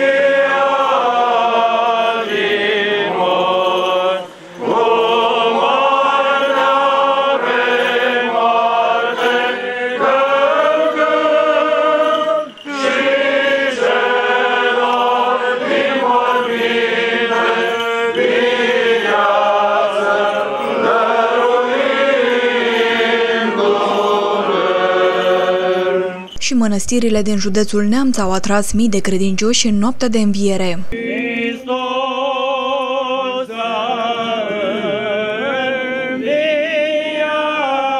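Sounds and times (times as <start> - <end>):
voices singing liturgical chant: 0.0 - 37.9.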